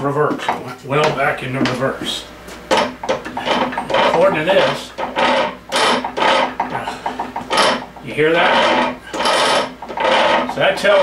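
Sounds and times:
fast ratchet clicks: 2.7 - 11.0
metal scraping strokes: 3.4 - 11.0.

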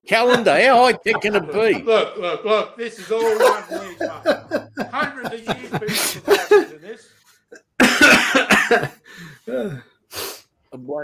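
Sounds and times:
man laughing loudly: 3.0 - 6.8.

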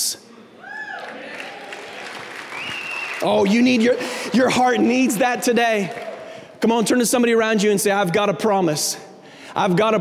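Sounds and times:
congregation clapping: 0.9 - 7.1.

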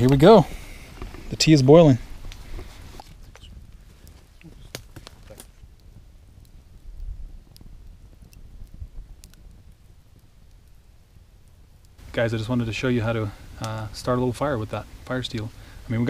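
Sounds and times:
campfire crackling: 0.0 - 16.0.

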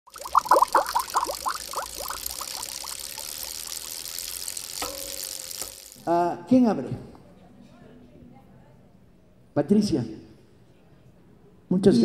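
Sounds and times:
bubbly water blips: 0.1 - 4.8
steady hiss: 0.6 - 6.2.

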